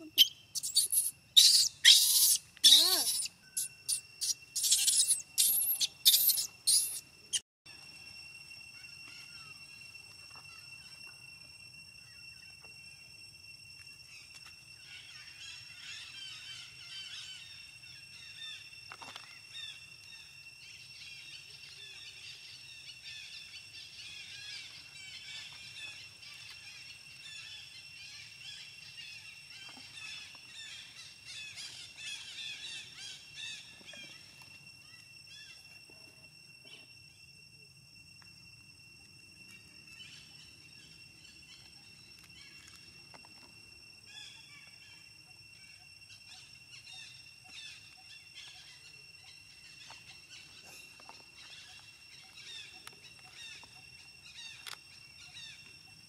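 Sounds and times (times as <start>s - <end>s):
baby monkey screaming: 0.0s - 7.0s
scattered chirps: 0.0s - 7.4s
steady high-pitched whine: 0.0s - 56.0s.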